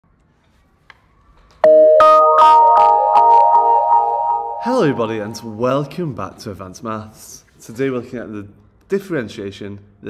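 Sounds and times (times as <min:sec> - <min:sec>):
synthesizer intro jingle: 0:01.6 - 0:05.8.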